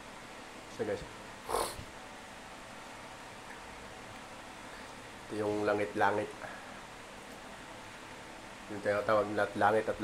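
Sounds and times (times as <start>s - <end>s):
faint room noise: 0.0s - 10.0s
nasal snort: 1.4s - 1.9s.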